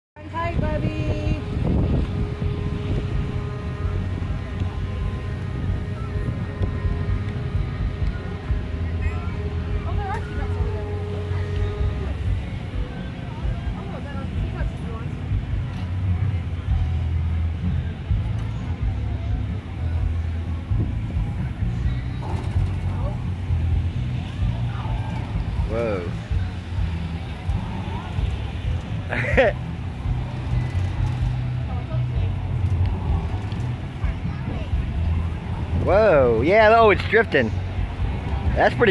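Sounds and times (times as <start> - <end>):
carnival ride machinery rumbling: 0.2 - 38.9
distant voices: 0.2 - 38.9.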